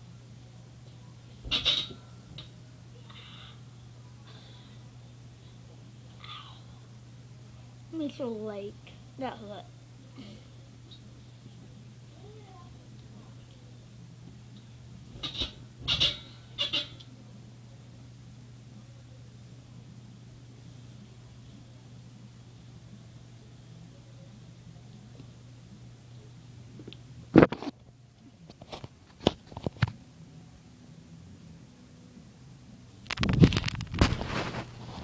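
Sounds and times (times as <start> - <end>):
bedsprings squeaking: 15.1 - 17.0.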